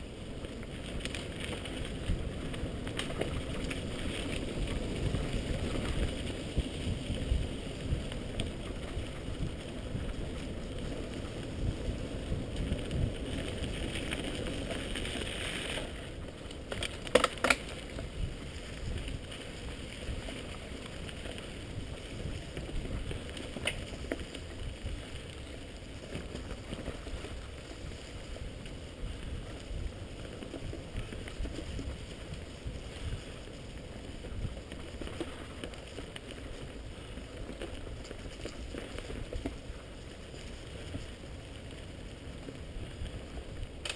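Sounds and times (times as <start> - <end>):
wind on microphone: 0.0 - 16.2, 16.9 - 43.9
bike tyres rumbling on dirt: 0.0 - 43.9.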